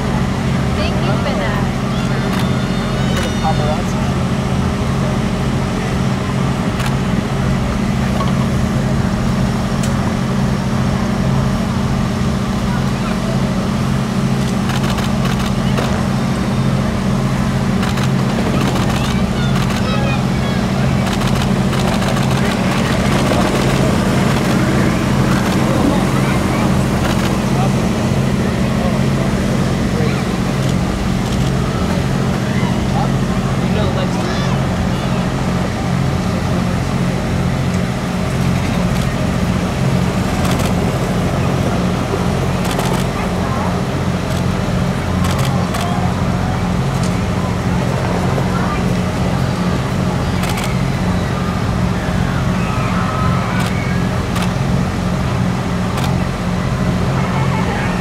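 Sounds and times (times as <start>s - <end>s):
low mechanical hum: 0.0s - 58.0s
scattered voices: 0.0s - 58.0s.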